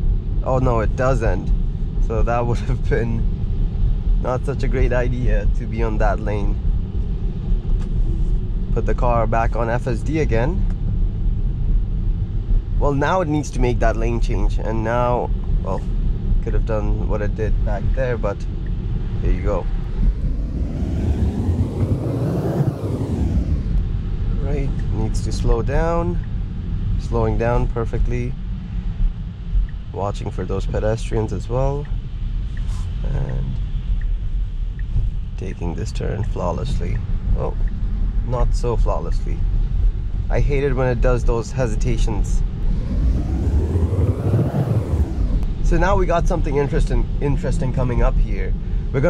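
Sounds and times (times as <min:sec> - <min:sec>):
car road noise rumble: 0:00.0 - 0:49.0
rushing whoosh: 0:18.8 - 0:25.0, 0:41.7 - 0:45.8.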